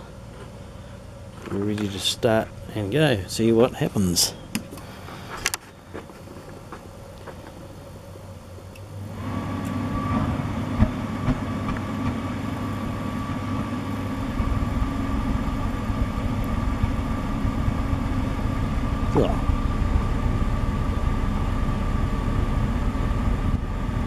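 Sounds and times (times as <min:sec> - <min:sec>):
heater fan humming and whining: 0:00.0 - 0:24.0.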